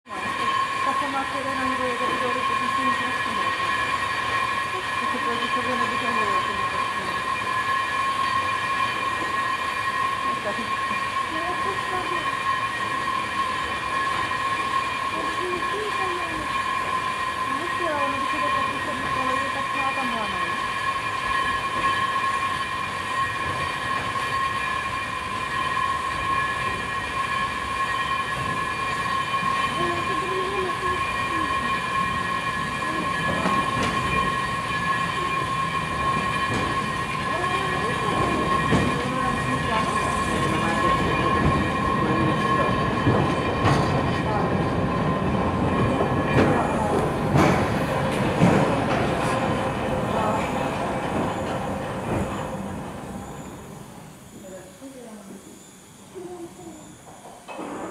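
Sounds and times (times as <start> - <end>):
wheels running on rails: 0.1 - 55.7
steady high whine: 0.1 - 57.9.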